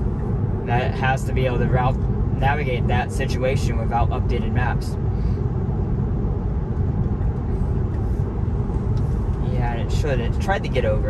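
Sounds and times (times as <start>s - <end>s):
road and tyre noise in car cabin: 0.0s - 11.0s.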